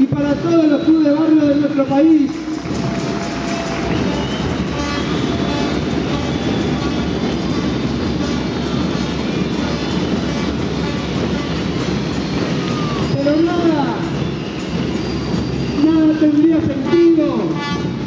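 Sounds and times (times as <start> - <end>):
crowd applauding in a hall: 0.0 - 18.0.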